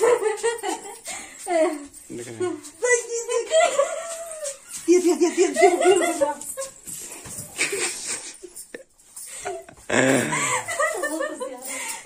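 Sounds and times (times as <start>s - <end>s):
girls laughing and squealing: 3.3s - 12.0s
breathy sounds: 9.2s - 10.7s.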